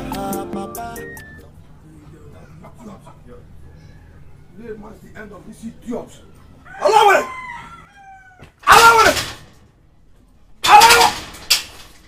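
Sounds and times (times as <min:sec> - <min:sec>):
loud cry: 0:06.7 - 0:09.4, 0:10.6 - 0:11.3.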